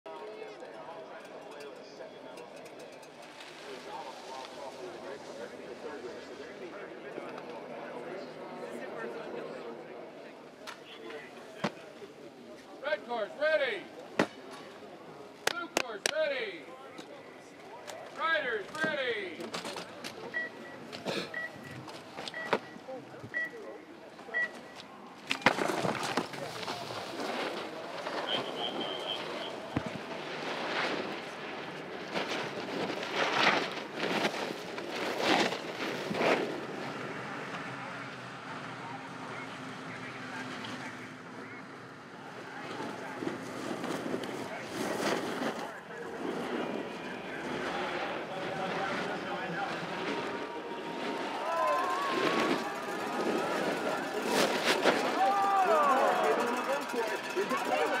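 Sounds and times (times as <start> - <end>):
snowboard edges scraping snow: 25.5 - 37.1, 43.2 - 58.0.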